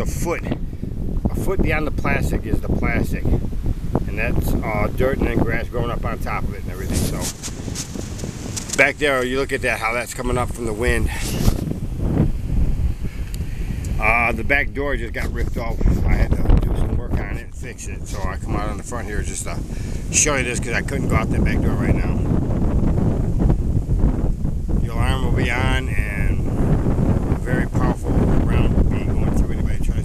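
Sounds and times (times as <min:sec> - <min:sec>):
gusty wind buffeting microphone: 0:00.0 - 0:30.0.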